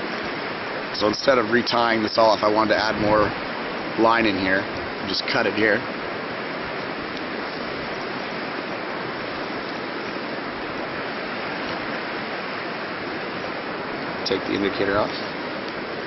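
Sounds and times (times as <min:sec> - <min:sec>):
river water rushing: 0:00.0 - 0:16.0.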